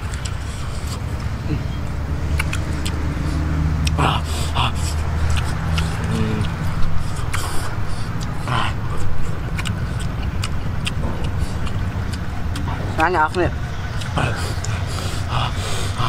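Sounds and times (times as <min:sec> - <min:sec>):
people chewing: 0:00.0 - 0:16.0
small clicks and mouth noises: 0:00.0 - 0:16.0
steady low rumble: 0:00.0 - 0:16.0.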